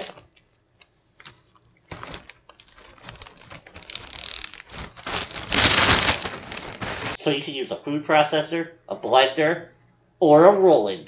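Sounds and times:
plastic bag crinkling: 0.0 - 7.3.

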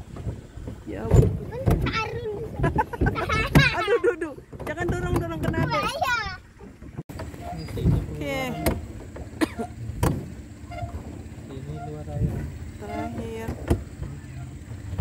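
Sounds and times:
boat motor humming: 0.0 - 15.0
sharp knocks: 10.0 - 10.4.

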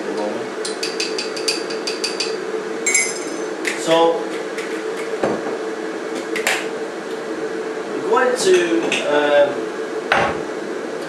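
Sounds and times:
electric kettle humming: 0.0 - 11.0
teaspoon clinking on glass jar: 2.9 - 3.5.

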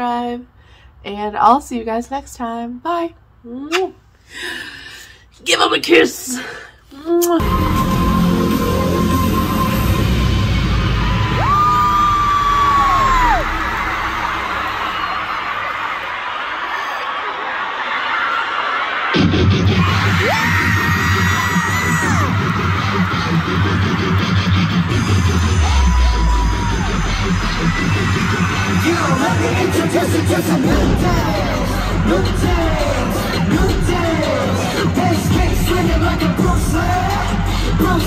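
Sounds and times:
loud amplified pop music: 7.3 - 16.1, 18.7 - 38.0
crowd screaming: 7.4 - 38.0.

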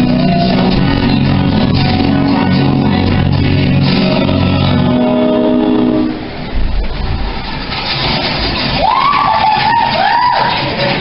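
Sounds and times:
dance music over sound system: 0.0 - 6.4.

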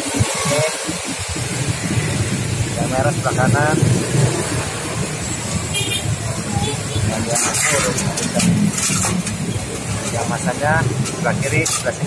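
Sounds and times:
vehicle engine rumble: 0.0 - 12.0
plastic clicks and scrapes on metal: 7.3 - 12.0.

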